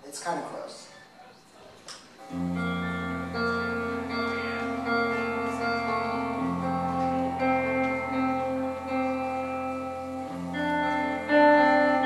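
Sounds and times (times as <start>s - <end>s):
guitar notes: 2.2s - 12.0s.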